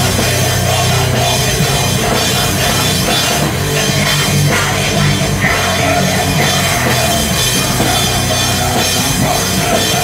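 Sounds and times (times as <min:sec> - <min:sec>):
drum kit: 0:00.0 - 0:10.0
electric guitar: 0:00.0 - 0:10.0.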